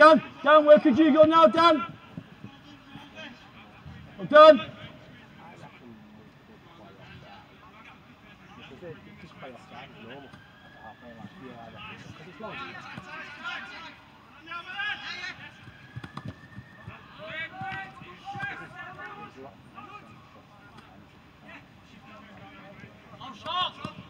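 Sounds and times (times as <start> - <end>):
players shouting and calling: 0.0 - 24.0.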